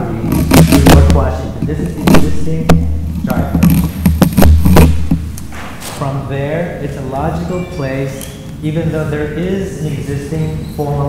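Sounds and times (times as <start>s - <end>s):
thuds and taps: 3.5s - 5.7s.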